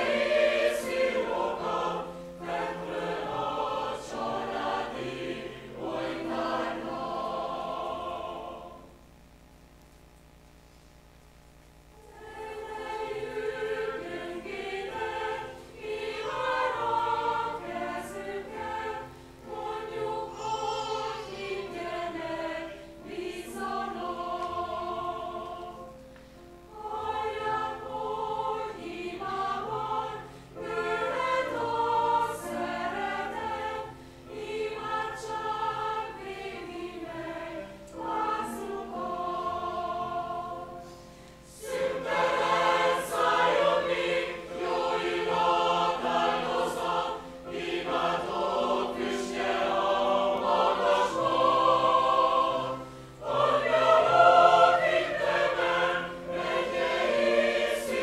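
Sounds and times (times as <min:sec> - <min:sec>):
church choir singing a hymn: 0:00.0 - 0:09.0, 0:12.0 - 0:58.0.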